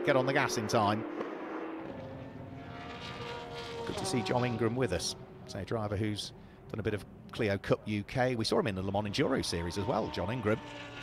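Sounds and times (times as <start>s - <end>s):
racing car engines: 0.0s - 11.0s.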